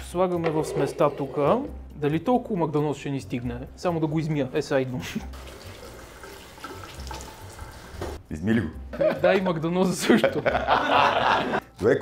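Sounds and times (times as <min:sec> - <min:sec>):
kitchen tap running: 0:05.3 - 0:08.2.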